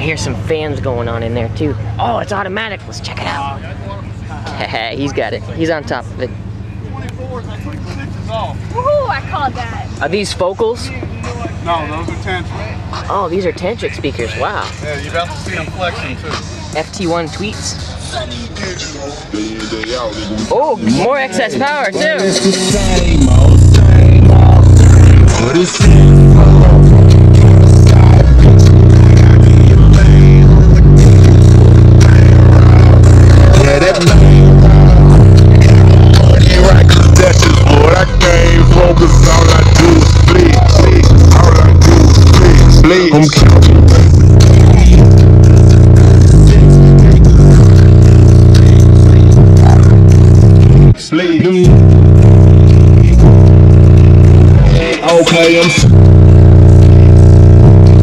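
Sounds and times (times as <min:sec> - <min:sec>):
bass-heavy music through car subwoofers: 0:00.0 - 0:58.0.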